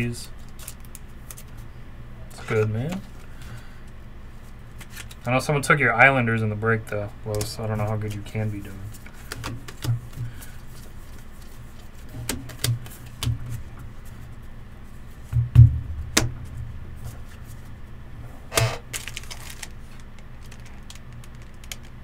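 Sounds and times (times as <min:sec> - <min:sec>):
low steady hum: 0:00.0 - 0:22.0
trading cards clicking and tapping: 0:09.0 - 0:13.6
loud thump: 0:15.3 - 0:17.3.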